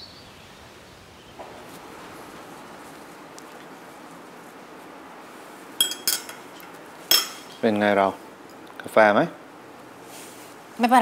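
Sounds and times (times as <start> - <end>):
teaspoon clinking against cup: 5.8 - 7.6.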